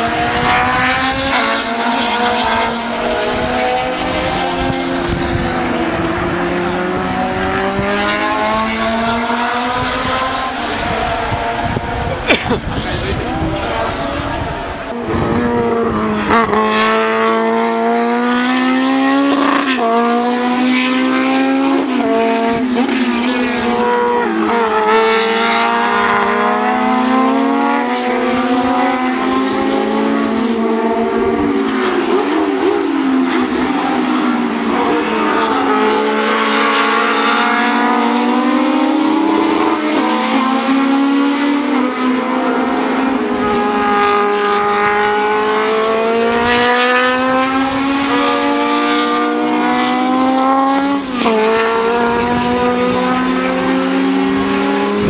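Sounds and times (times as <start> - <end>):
racing car engines at high revs: 0.0 - 55.0.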